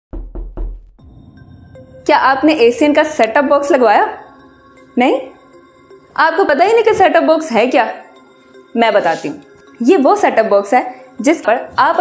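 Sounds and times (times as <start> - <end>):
faint music with held tones: 1.4 - 12.0.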